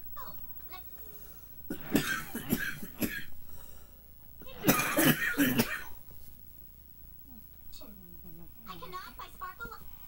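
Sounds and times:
person coughing: 1.7s - 3.3s, 4.5s - 6.0s.

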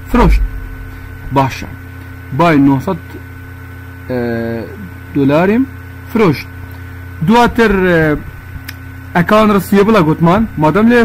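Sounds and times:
man's drawn-out hesitation sound: 0.0s - 1.8s
electrical mains hum: 0.0s - 11.0s.

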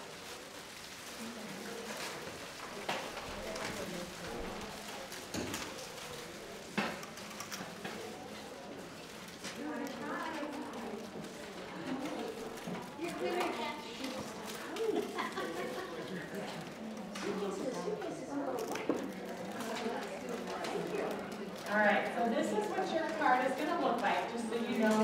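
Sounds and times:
indistinct chatter: 0.0s - 25.0s.

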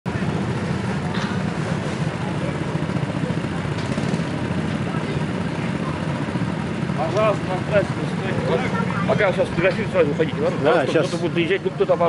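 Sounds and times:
go-kart engines idling: 0.1s - 12.0s.

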